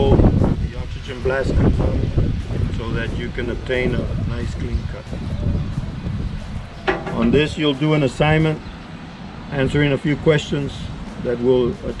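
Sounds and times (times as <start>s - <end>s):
wind rumbling on microphone: 0.0s - 9.0s
person talking: 7.0s - 7.8s.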